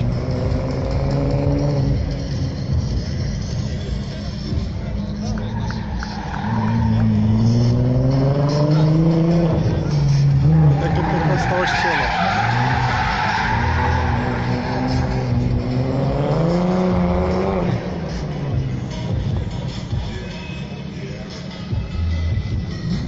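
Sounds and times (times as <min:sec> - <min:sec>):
car engine revving: 0:00.0 - 0:23.0
tyre squeal and skidding: 0:05.2 - 0:07.9, 0:10.2 - 0:15.5.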